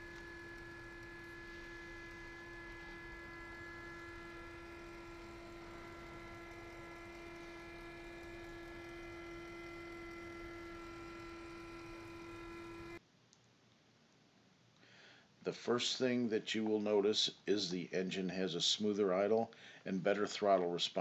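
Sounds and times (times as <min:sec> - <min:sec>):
fuel pump motor humming: 0:00.0 - 0:13.0.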